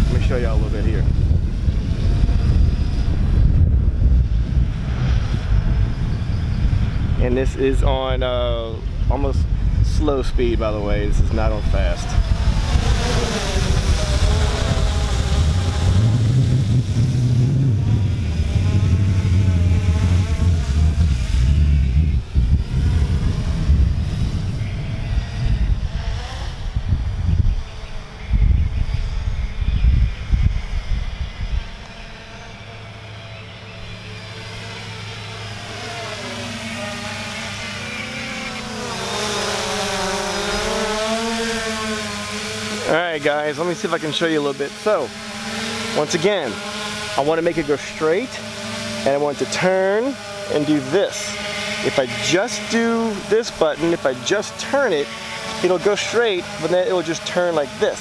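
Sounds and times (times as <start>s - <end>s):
wind rumble on microphone: 0.0s - 37.9s
drone propellers buzzing: 0.0s - 58.0s.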